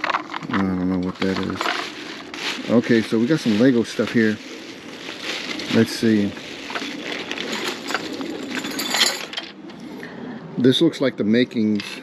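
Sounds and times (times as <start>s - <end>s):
toy bricks clattering: 0.0s - 2.5s, 5.6s - 9.6s
plastic bag crinkling: 0.0s - 9.4s.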